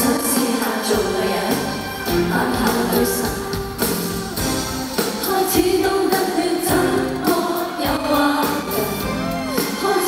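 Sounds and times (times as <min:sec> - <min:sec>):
band backing: 0:00.0 - 0:10.0
live pop singing: 0:00.0 - 0:10.0.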